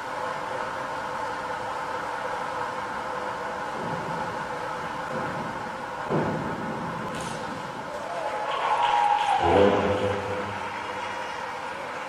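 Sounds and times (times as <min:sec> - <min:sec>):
indoor pool hall background noise: 0:00.0 - 0:12.0.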